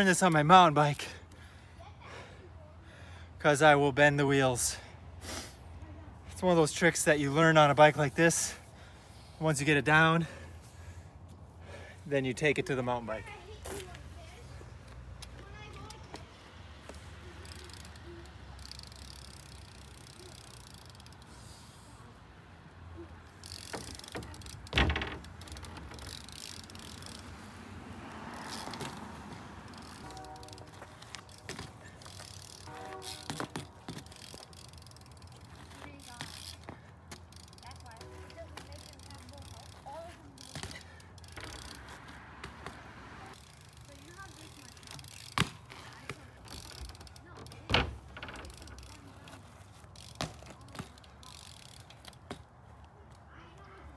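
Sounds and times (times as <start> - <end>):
bike tyres rolling on asphalt: 0.0 - 53.9
bike rattling: 6.2 - 53.8.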